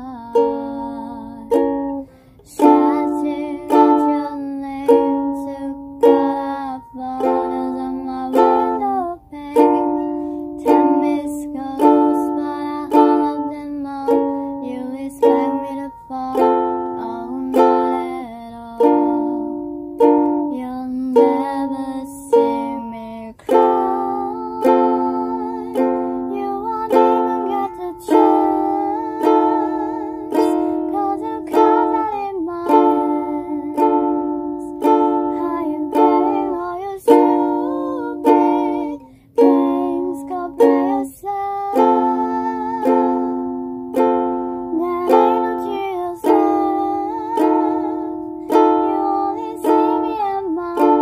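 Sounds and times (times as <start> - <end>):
ukulele strumming chords: 0.0 - 51.0.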